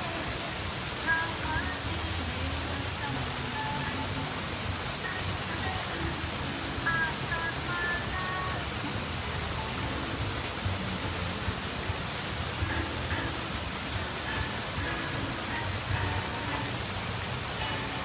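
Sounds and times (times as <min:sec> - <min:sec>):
steady rushing noise: 0:00.0 - 0:18.0.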